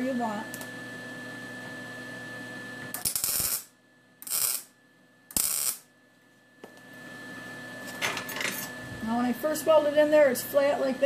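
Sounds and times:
welder crackling bursts: 2.9 - 4.7, 5.3 - 5.9.

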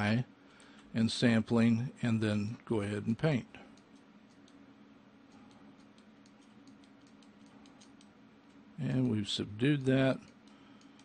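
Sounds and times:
low steady hum: 0.0 - 11.0
computer mouse clicks: 3.8 - 4.6, 5.3 - 9.2, 10.2 - 11.0.

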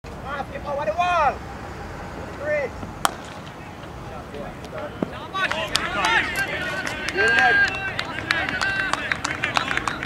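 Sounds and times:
players shouting: 2.2 - 10.0
cricket ball crack: 3.0 - 4.0.

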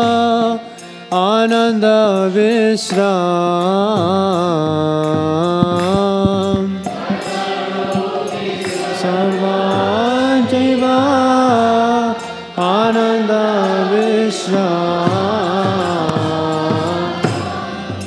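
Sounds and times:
person chanting a prayer: 0.0 - 18.0.

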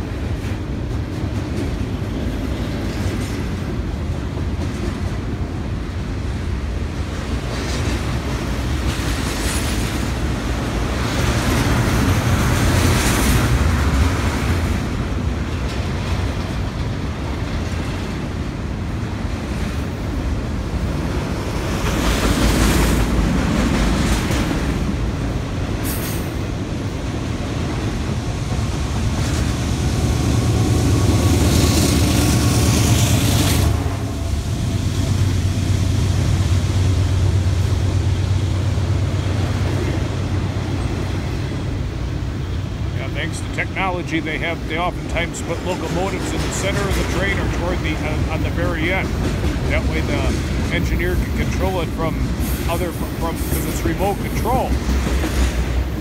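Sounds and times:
diesel locomotive engine hum: 0.0 - 56.0
train wheels rumbling on rails: 0.0 - 56.0.

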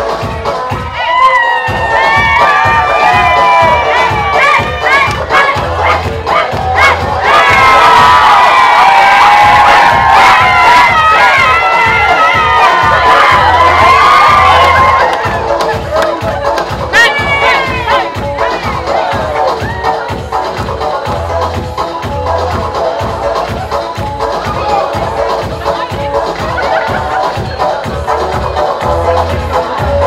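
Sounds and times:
crowd cheering and shouting: 0.0 - 30.0.

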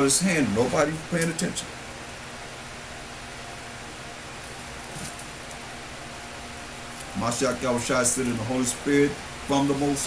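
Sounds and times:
faint hum: 0.0 - 10.0
steady hiss: 0.0 - 10.0.

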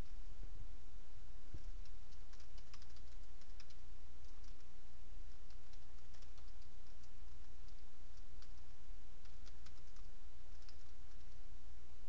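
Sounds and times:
steady low hum: 0.0 - 12.0
computer keyboard typing: 1.6 - 4.7, 5.4 - 11.4.

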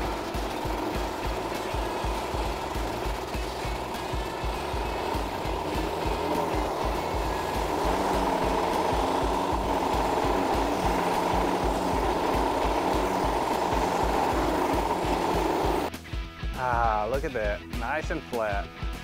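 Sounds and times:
plate compactor engine vibrating: 0.0 - 15.9
background music with steady beat: 0.0 - 19.0.

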